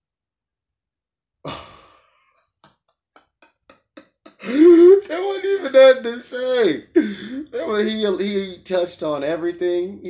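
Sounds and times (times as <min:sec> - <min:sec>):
man sighing: 0:01.5 - 0:02.2, 0:04.3 - 0:05.0, 0:07.0 - 0:07.6
man laughing: 0:01.5 - 0:08.4.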